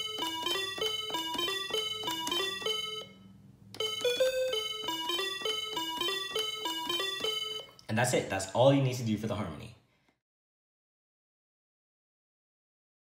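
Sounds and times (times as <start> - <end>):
electronic calculator beeps: 0.0 - 7.8.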